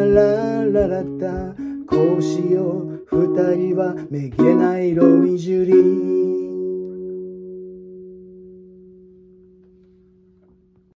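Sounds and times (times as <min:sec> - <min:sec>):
acoustic guitar chord ringing: 0:00.0 - 0:10.8.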